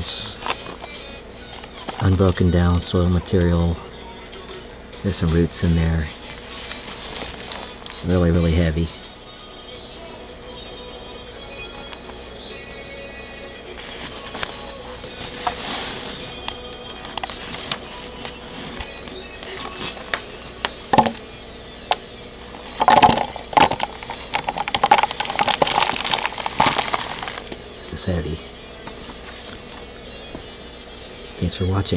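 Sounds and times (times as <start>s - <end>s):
paper crackling: 0.3s - 0.9s, 6.2s - 8.0s, 16.8s - 21.2s, 22.4s - 27.6s
soil clumps rattling in plastic: 22.6s - 27.6s.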